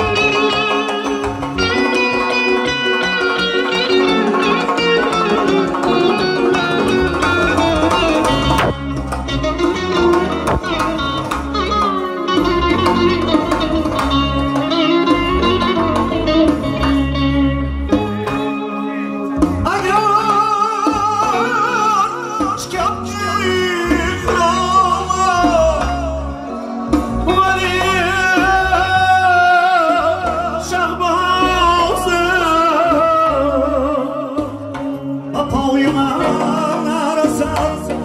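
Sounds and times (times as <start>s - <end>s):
man singing with vibrato: 0.0s - 11.2s, 18.7s - 38.0s
frame drum: 0.0s - 18.6s
electric guitar and keyboard melody: 0.0s - 38.0s.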